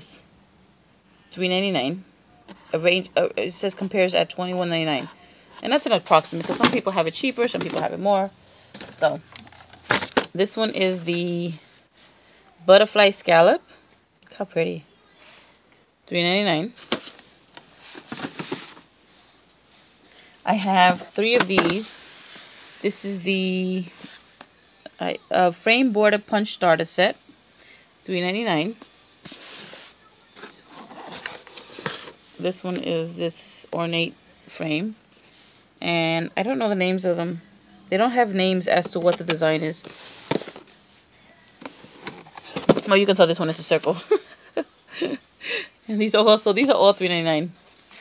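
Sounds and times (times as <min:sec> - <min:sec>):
cardboard packaging rustling: 0:05.0 - 0:08.0, 0:08.6 - 0:11.1, 0:16.8 - 0:18.9, 0:29.2 - 0:32.4, 0:38.8 - 0:40.8, 0:41.4 - 0:43.2
packaging rustling: 0:08.6 - 0:10.4, 0:30.4 - 0:32.3, 0:39.2 - 0:40.8, 0:41.5 - 0:43.1.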